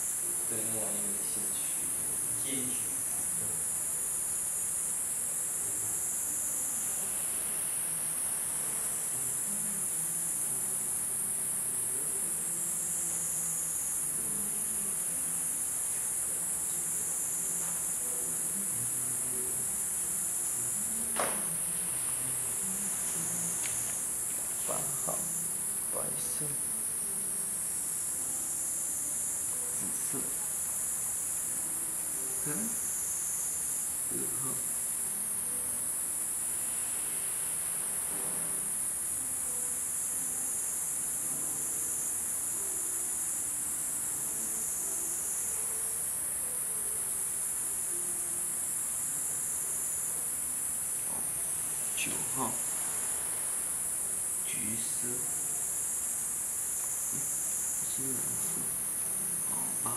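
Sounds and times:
high-pitched insect chorus: 0.0s - 59.9s.

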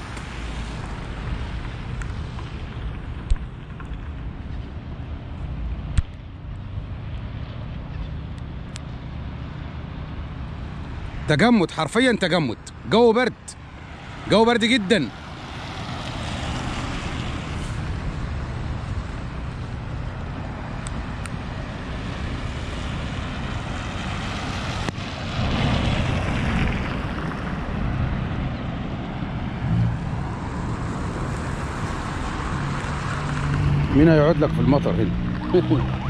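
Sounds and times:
cars passing on wet road: 0.0s - 36.0s
low engine hum: 12.7s - 36.0s.

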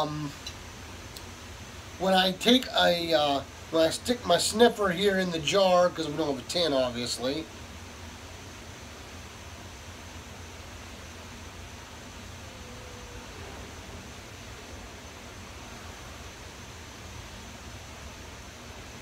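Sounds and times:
background hiss: 0.0s - 19.0s.

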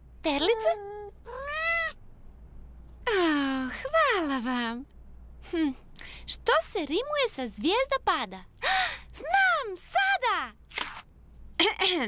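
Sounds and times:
cartoon cat meow: 0.4s - 2.0s.

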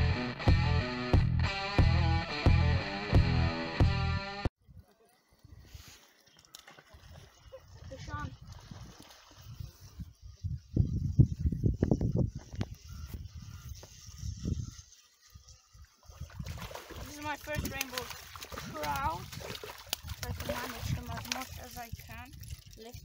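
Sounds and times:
wind buffeting microphone: 7.8s - 14.9s, 16.1s - 23.0s.

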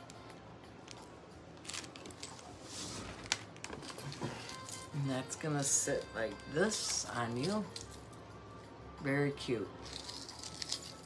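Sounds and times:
jewelry clicking and rustling: 0.0s - 5.0s, 5.6s - 8.2s, 9.8s - 11.0s.

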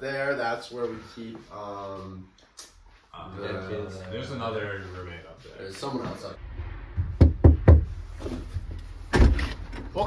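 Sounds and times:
knocking on wooden door: 7.2s - 7.9s.

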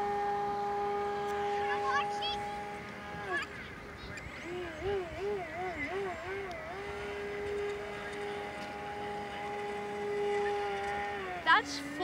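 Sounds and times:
electric motor propeller whining: 0.0s - 12.0s.

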